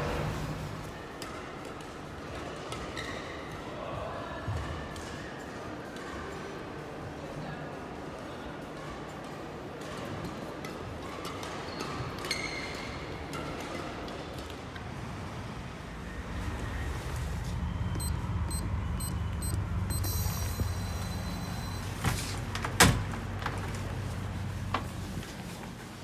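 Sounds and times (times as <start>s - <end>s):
low hum: 15.3s - 25.3s
high electronic beeping: 17.6s - 22.0s.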